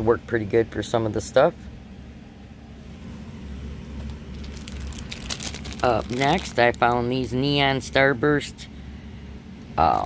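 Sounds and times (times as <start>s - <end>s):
steady low hum: 0.0s - 10.0s
plastic packaging crinkling: 3.9s - 7.1s.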